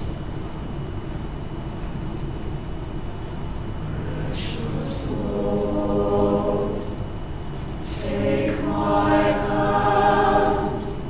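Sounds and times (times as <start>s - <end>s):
mixed choir singing: 3.8s - 11.0s.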